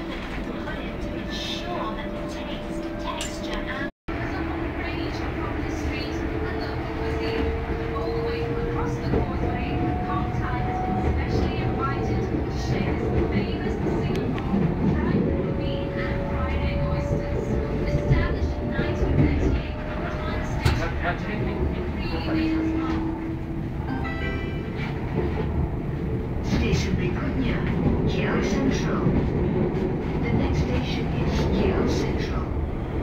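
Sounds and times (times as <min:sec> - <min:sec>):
train rumbling on rails: 0:00.0 - 0:33.0.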